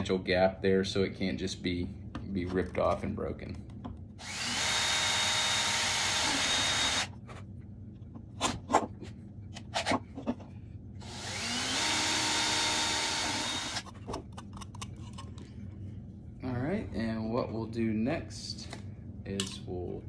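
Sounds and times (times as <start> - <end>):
cordless drill drilling plastic: 4.2 - 7.1, 11.0 - 13.8.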